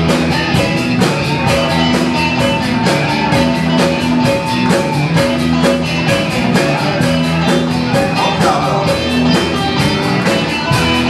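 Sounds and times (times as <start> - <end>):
bass guitar: 0.0 - 11.0
drum kit steady beat: 0.0 - 11.0
electric guitars: 0.0 - 11.0.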